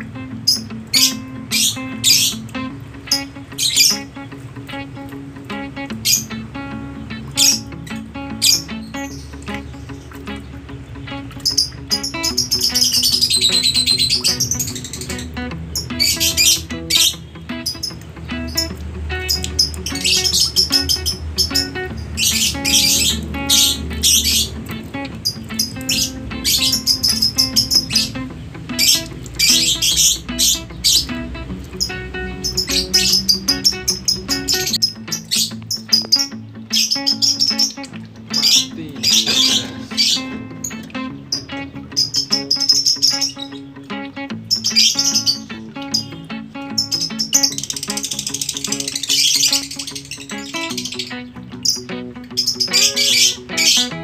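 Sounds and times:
background music with low notes: 0.0 - 54.0
songbirds chirping: 0.0 - 54.0.

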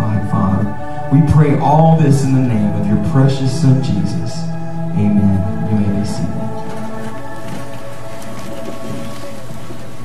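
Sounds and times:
band holding chord: 0.0 - 10.0
congregation rustling and shuffling: 0.0 - 10.0.

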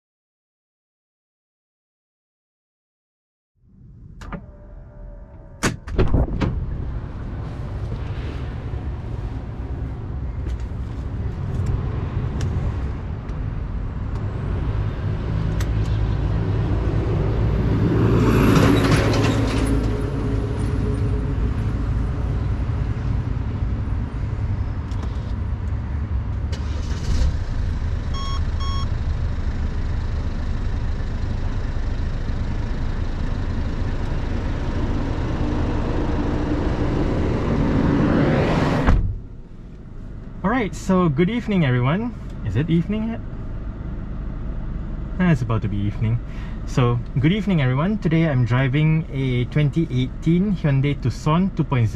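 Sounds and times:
low rumble of vehicles: 3.6 - 51.9
thump: 5.6 - 6.7, 38.8 - 39.2
vehicle passing: 6.6 - 13.2, 34.7 - 38.9
short electronic beeps: 28.1 - 28.9.

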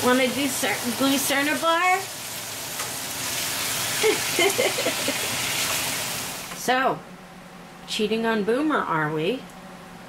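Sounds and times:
meat and onions sizzling in a pan: 0.0 - 6.5.

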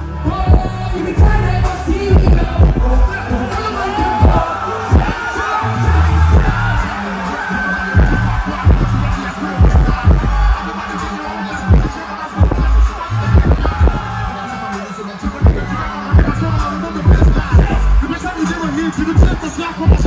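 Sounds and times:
live concert music: 0.0 - 20.0
person singing: 0.0 - 20.0
deep sliding bass notes: 4.2 - 6.9, 8.0 - 10.6.

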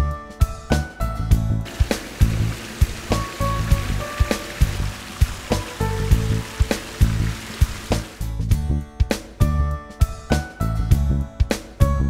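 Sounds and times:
background music with plucked notes: 0.0 - 12.0
water spilling from fountain: 1.6 - 8.3.

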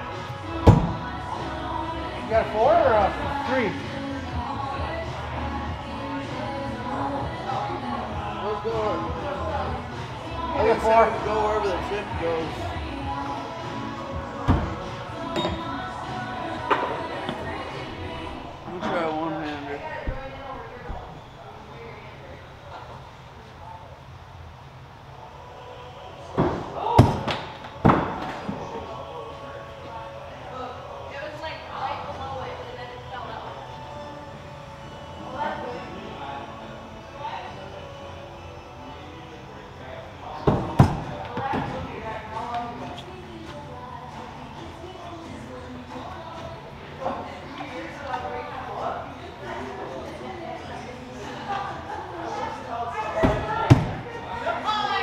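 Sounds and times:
background chatter: 0.0 - 55.0
background music: 0.0 - 55.0.

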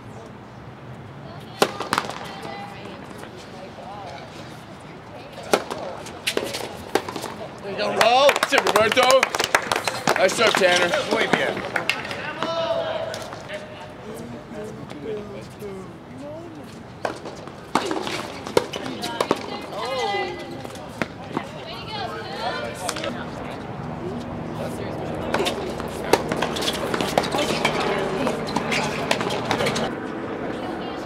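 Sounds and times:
voices calling out: 1.2 - 4.5, 5.1 - 29.9
tennis balls struck by racquets: 1.4 - 3.3, 5.2 - 13.4, 17.0 - 21.8, 22.4 - 23.6, 24.6 - 29.9.

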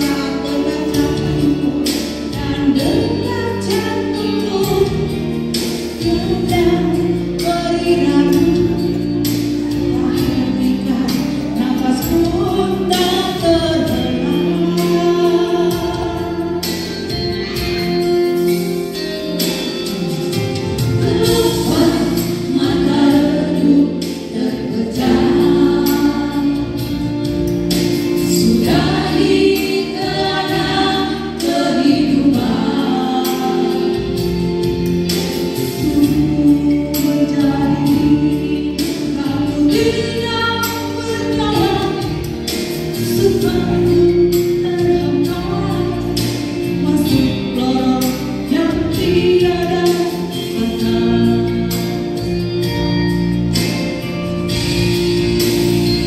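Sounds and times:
women singing gospel into microphones: 0.0 - 53.7
low instrumental accompaniment: 0.0 - 56.0
women's group singing: 21.0 - 26.9, 28.2 - 34.3.

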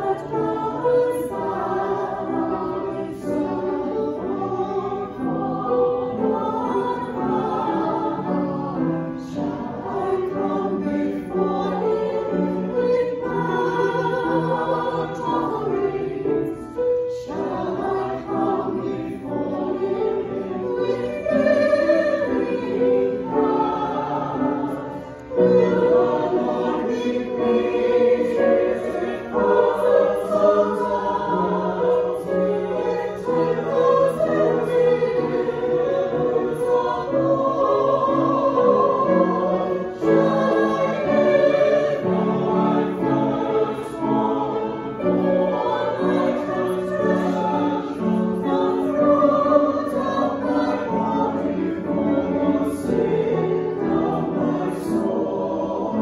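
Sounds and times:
mixed choir singing: 0.0 - 56.0
piano accompaniment: 0.0 - 56.0.

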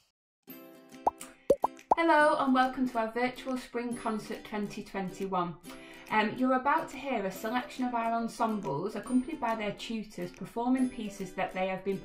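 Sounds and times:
soft background music: 0.8 - 12.0
rising cartoon bloop pops: 1.1 - 2.0.

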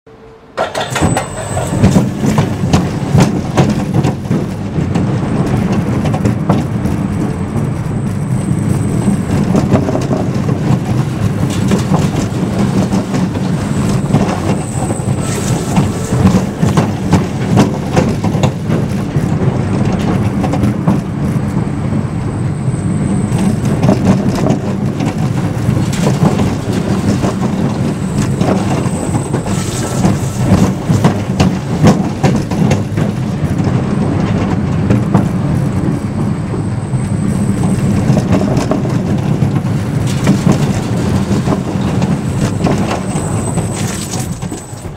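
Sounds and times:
roller coaster wheel rumble: 0.2 - 44.9
track clatter and rattling: 0.6 - 44.9.

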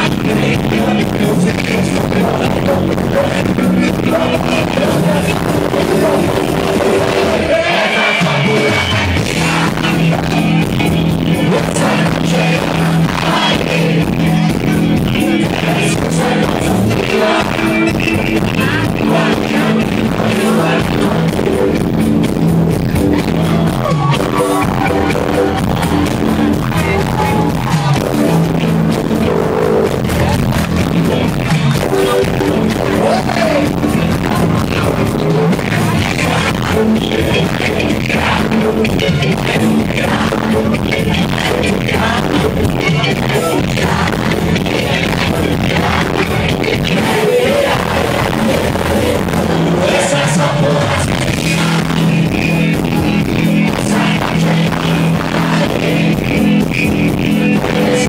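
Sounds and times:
live band playing through pa: 0.0 - 58.0
person singing: 0.0 - 58.0.

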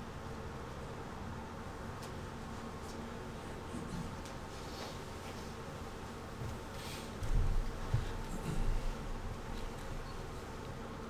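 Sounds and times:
faint room noise: 0.0 - 11.0
steady hum: 0.0 - 11.0.

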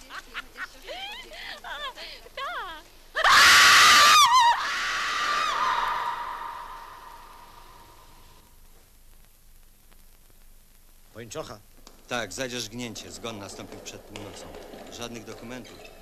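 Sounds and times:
drawn-out scream: 3.2 - 8.4
high-pitched shrieks and cries: 3.2 - 8.4.

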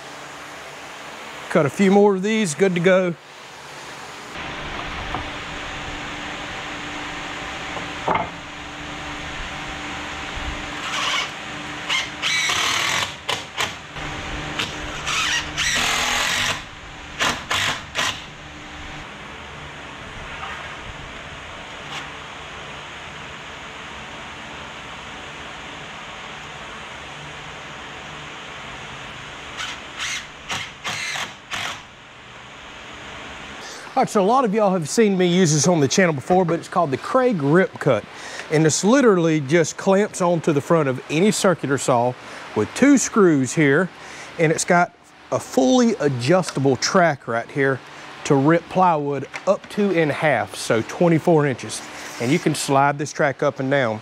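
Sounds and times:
power tool cutting wood: 10.7 - 18.4, 29.6 - 31.9
cordless drill driving screws: 10.8 - 13.7, 14.6 - 18.3, 29.6 - 31.8.

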